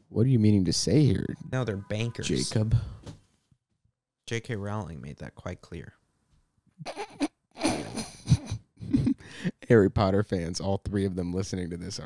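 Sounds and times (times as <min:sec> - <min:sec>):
man laughing: 0:06.8 - 0:09.7.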